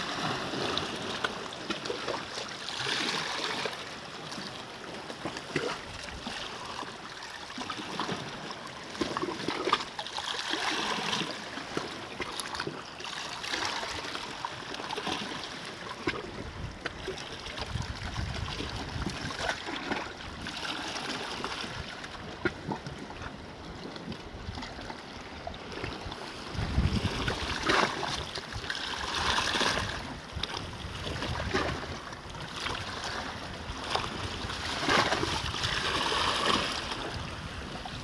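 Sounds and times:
sea waves washing against rocks: 0.0s - 38.0s
wind buffeting microphone: 17.6s - 19.5s, 25.6s - 28.3s, 29.2s - 32.0s.

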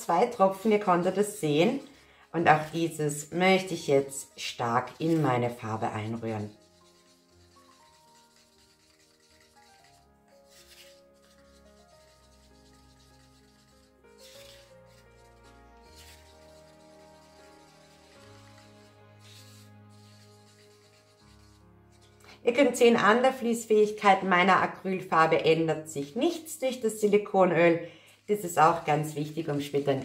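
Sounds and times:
stick scraping a paper cup: 0.0s - 23.0s, 28.2s - 30.0s
soft background music: 0.0s - 30.0s.

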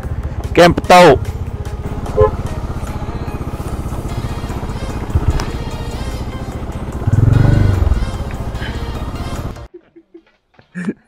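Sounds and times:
motorcycle engine running: 0.0s - 9.7s.

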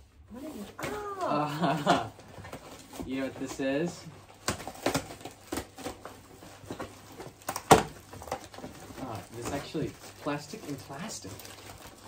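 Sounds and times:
cardboard and plastic rustling: 0.2s - 12.0s
sharp packaging crackle: 4.3s - 12.0s.

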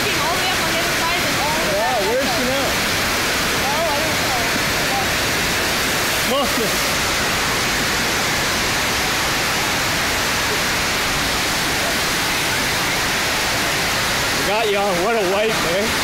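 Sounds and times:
water rushing: 0.0s - 16.0s.

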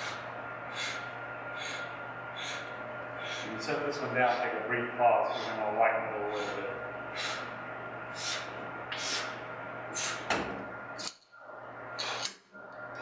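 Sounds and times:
man breathing hard: 0.0s - 3.6s, 5.3s - 5.6s, 6.3s - 10.3s.

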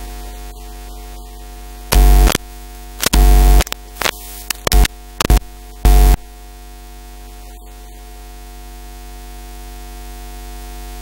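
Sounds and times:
sound system hum and hiss: 0.0s - 11.0s
loud distorted burst: 1.9s - 2.4s, 3.0s - 6.2s.

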